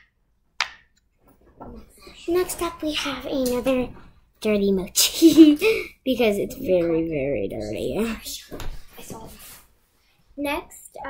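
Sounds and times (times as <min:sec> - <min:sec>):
girl laughing: 0:05.0 - 0:06.0.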